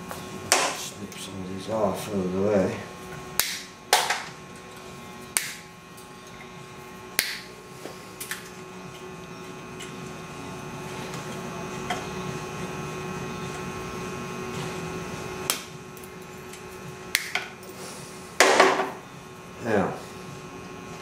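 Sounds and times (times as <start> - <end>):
side cutters snipping wire: 3.4 - 4.1.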